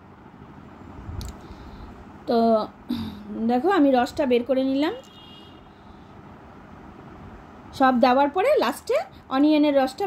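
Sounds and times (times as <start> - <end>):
low rumble of background noise: 0.0 - 10.0.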